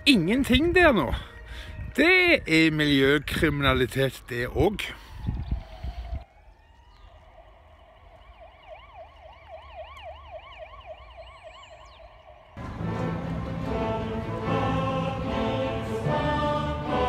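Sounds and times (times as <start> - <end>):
emergency vehicle siren: 0.7 - 17.0
loud music: 12.6 - 17.0.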